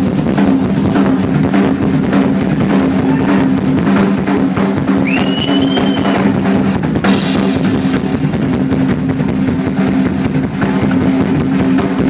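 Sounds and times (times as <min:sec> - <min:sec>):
drum kit played fast: 0:00.0 - 0:12.0
cymbal crash: 0:06.0 - 0:11.4.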